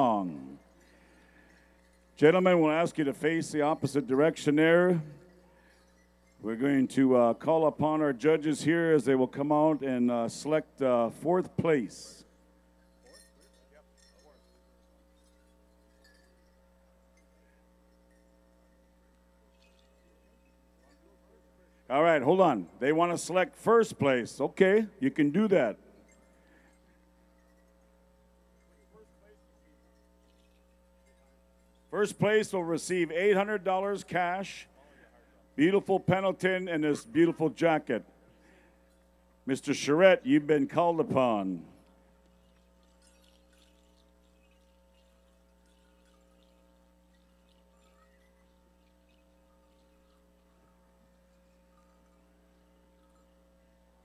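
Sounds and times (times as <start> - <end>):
faint electrical hum: 0.0 - 54.0.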